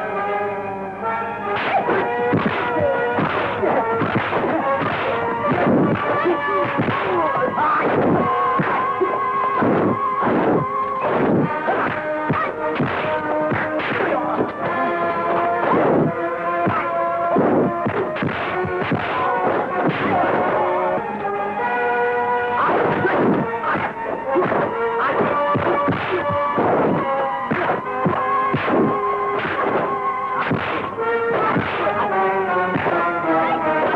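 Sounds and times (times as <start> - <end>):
film score with held notes: 0.0 - 33.9
punch and kick impacts: 1.6 - 14.8, 15.6 - 20.6, 22.6 - 32.0.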